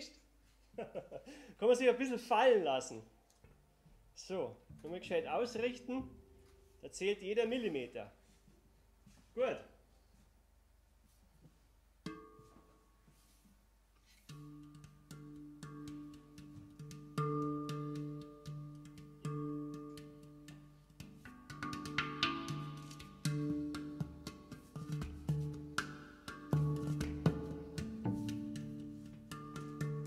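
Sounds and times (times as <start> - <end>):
handpan notes: 12.0 - 13.0, 14.2 - 30.0
plucked double bass: 14.6 - 30.0.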